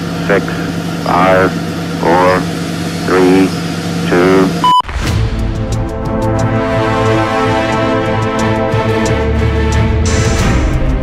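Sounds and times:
steady low hum: 0:00.0 - 0:11.0
countdown voice: 0:00.2 - 0:04.8.

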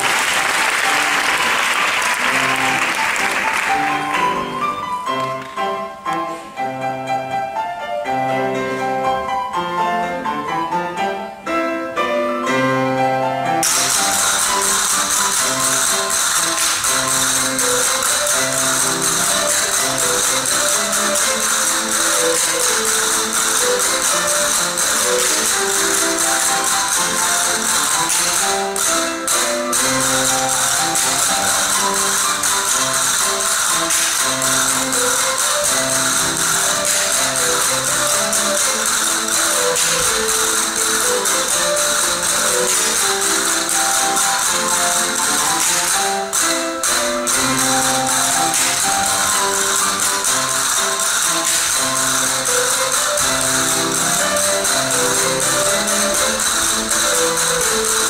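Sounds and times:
folk dance melody: 0:00.0 - 0:58.0
castanets clicking: 0:13.6 - 0:58.0.

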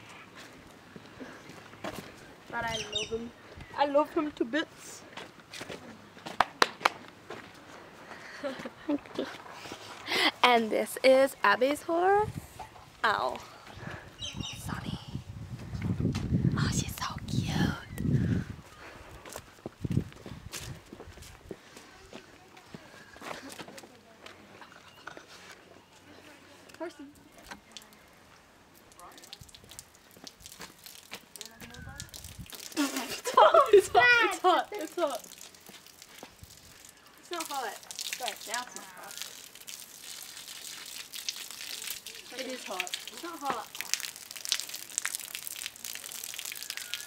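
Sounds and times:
footsteps: 0:00.0 - 0:02.6, 0:19.0 - 0:26.2
girl talking and laughing: 0:08.1 - 0:11.3, 0:32.7 - 0:35.3
microphone bumps and rustle: 0:15.3 - 0:17.1, 0:19.4 - 0:21.5
water spraying from garden hose: 0:28.7 - 0:47.0.

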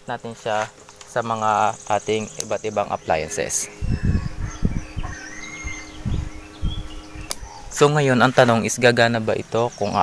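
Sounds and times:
electric fan hum: 0:00.0 - 0:10.0
bird chirps: 0:01.1 - 0:10.0
low rumbles: 0:01.3 - 0:09.2.

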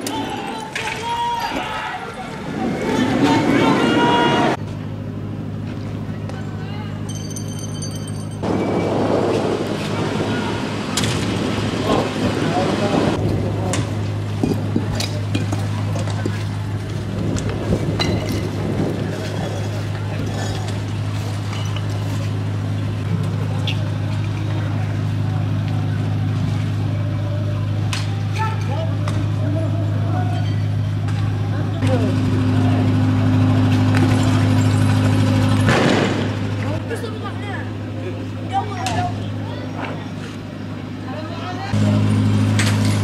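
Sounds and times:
distant voices: 0:00.0 - 0:43.0
truck engine humming: 0:03.5 - 0:43.0
loud burst of noise: 0:08.4 - 0:14.3, 0:31.8 - 0:36.8.

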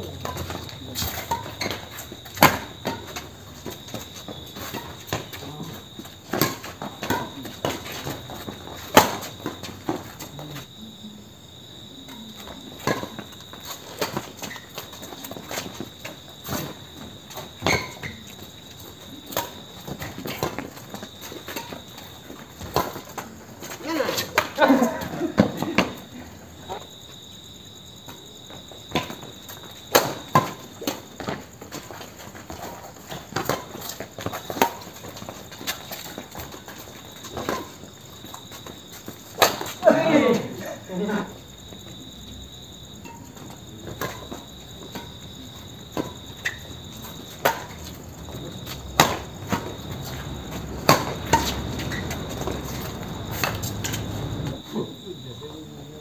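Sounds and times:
crickets chirring: 0:00.0 - 0:56.0
shoes scuffing on concrete: 0:13.2 - 0:40.4, 0:41.6 - 0:54.6.

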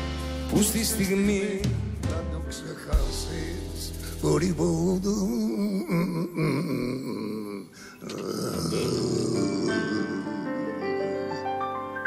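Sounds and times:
piano notes: 0:07.8 - 0:12.0.

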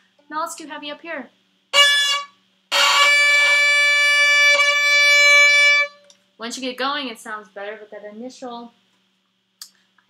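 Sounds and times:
violin bowed notes: 0:01.8 - 0:06.1.

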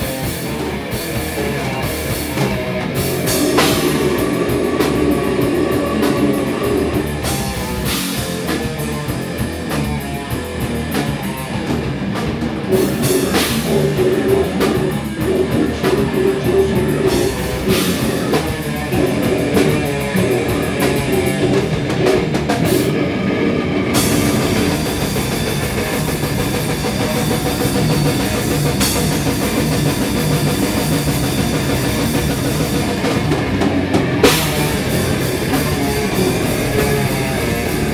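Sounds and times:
band playing heavy rock: 0:00.0 - 0:37.9
distorted guitar note: 0:00.0 - 0:37.9
drum kit: 0:00.0 - 0:37.9
electric bass: 0:00.0 - 0:37.9.

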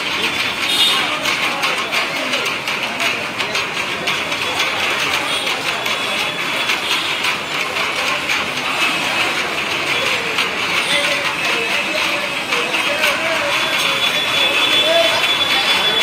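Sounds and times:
crowd footsteps and shuffling: 0:00.0 - 0:16.0.

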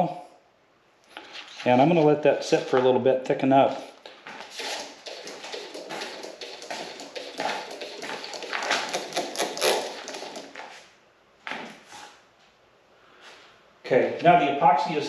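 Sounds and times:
handling noise: 0:04.0 - 0:12.0
stir stick scraping plastic cup: 0:04.4 - 0:10.7.

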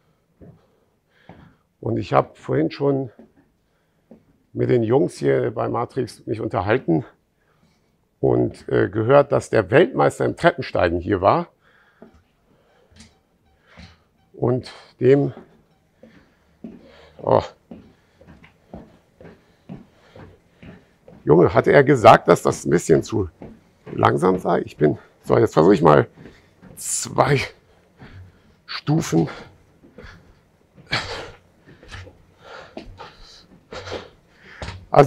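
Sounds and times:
man breathing hard: 0:00.0 - 0:01.7, 0:11.6 - 0:13.0, 0:15.9 - 0:17.2, 0:17.8 - 0:21.0, 0:27.9 - 0:28.6, 0:31.0 - 0:34.8
soft footfalls on stair climber: 0:00.0 - 0:07.2, 0:10.4 - 0:35.0.

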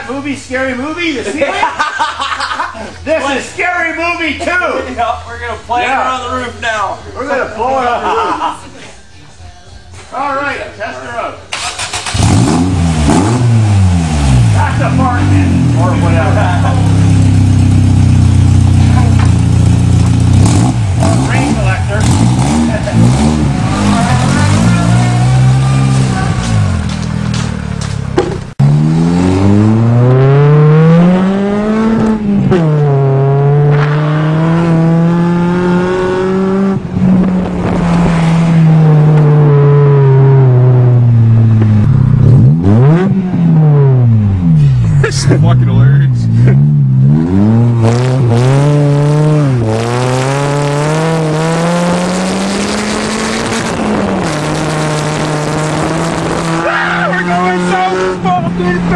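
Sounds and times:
loud car engine revving: 0:11.5 - 0:58.9.

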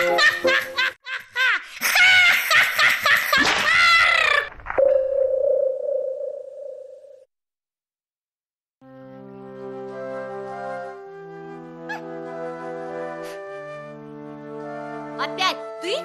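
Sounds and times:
warbling cartoon laughter: 0:00.0 - 0:04.5
steady ringing tone: 0:04.8 - 0:07.3.

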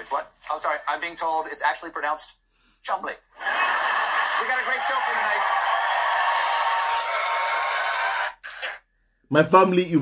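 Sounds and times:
audience applause: 0:03.4 - 0:08.4.

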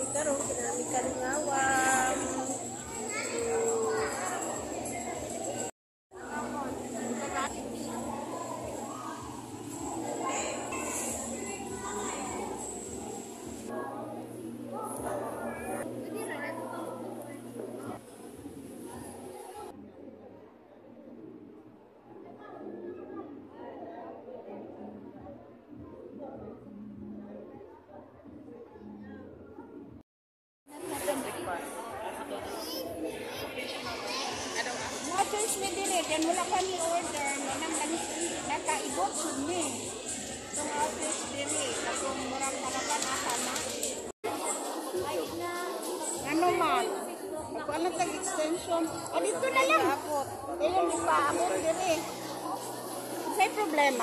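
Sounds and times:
children's voices: 0:00.0 - 0:05.7, 0:06.7 - 0:17.4, 0:30.8 - 0:54.0
crowd chatter: 0:00.0 - 0:30.0, 0:30.7 - 0:54.0.

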